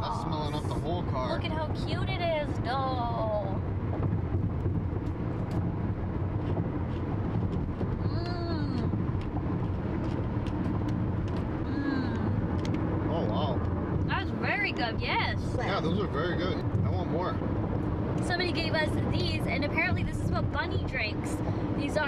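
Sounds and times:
car road and engine noise: 0:00.0 - 0:22.0.

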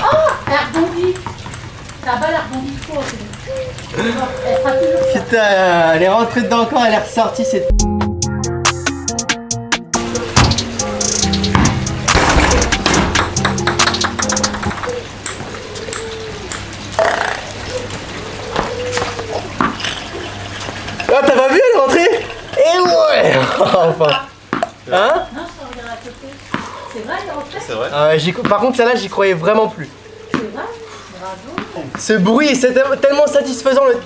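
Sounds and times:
ping-pong ball bouncing: 0:00.0 - 0:05.3, 0:11.5 - 0:16.7, 0:24.5 - 0:27.6
background music: 0:07.7 - 0:15.2.

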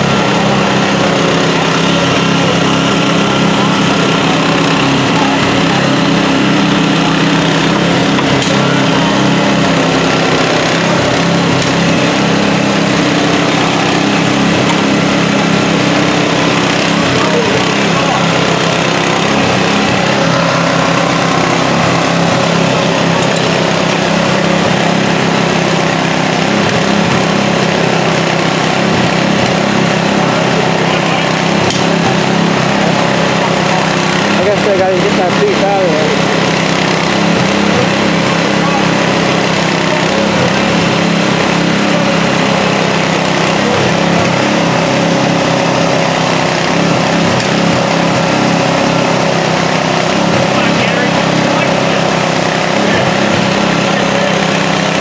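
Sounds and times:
engine humming steadily: 0:00.0 - 0:55.0.

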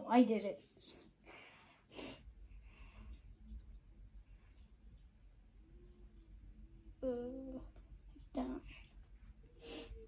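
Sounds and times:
faint breaths: 0:01.1 - 0:03.6.

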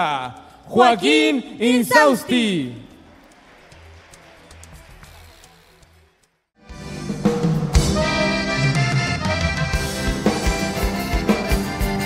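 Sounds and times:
accordion melody: 0:06.6 - 0:12.0.

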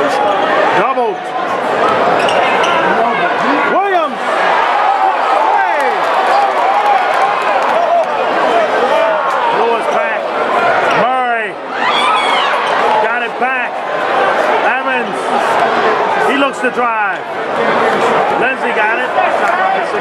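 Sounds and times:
crowd noise: 0:00.0 - 0:20.0.

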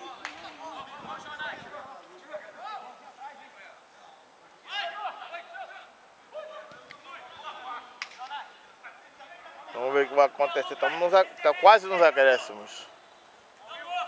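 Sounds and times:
commentary: 0:00.0 - 0:14.0
players shouting: 0:00.0 - 0:14.0.

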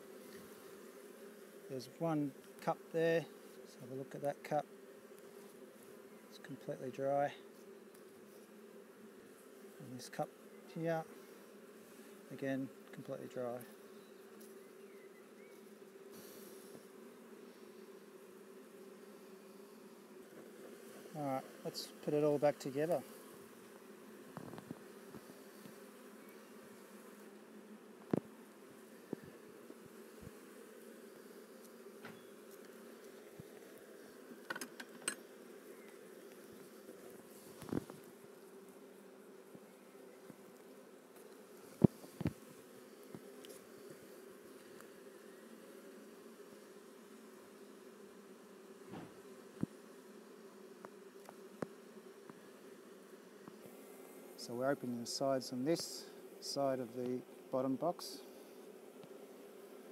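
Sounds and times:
honeybees humming: 0:00.0 - 0:59.9.

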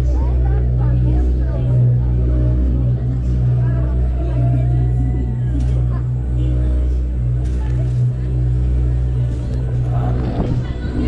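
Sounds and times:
loud low hum: 0:00.0 - 0:11.0
roller coaster car rolling on track: 0:09.3 - 0:11.0.

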